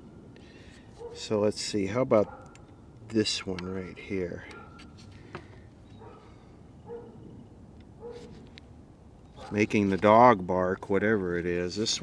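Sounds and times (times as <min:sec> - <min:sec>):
dog barking faintly: 0:09.4 - 0:09.7.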